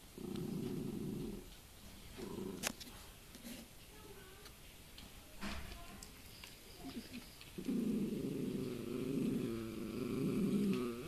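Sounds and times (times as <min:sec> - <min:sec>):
puppy growling: 0:00.0 - 0:01.6, 0:02.2 - 0:02.7, 0:07.6 - 0:11.0.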